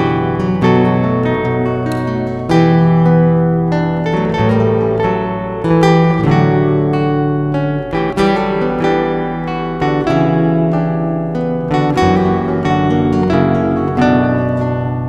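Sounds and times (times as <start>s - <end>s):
acoustic guitar music: 0.0s - 15.0s.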